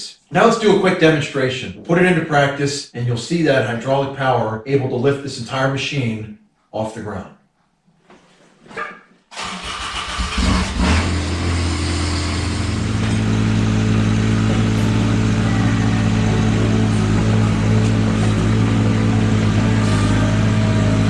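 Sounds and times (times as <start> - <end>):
tractor engine starting and idling: 9.3 - 21.0.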